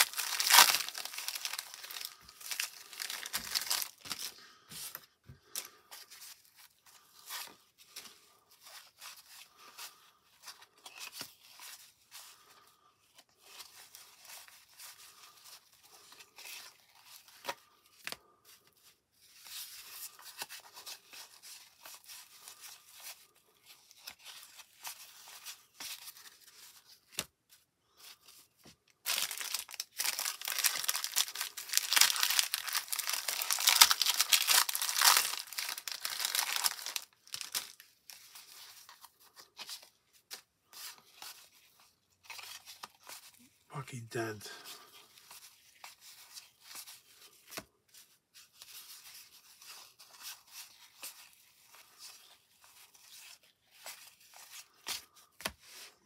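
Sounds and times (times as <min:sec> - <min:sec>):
cellophane wrapper crinkling and tearing: 0:00.0 - 0:04.4, 0:29.0 - 0:40.4
cardboard cards rustling and sliding: 0:00.0 - 0:12.5, 0:13.1 - 0:43.4, 0:45.0 - 0:56.0.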